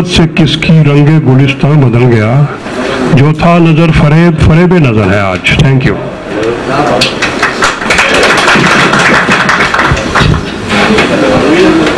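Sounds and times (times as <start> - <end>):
audience applauding: 7.0 - 11.1.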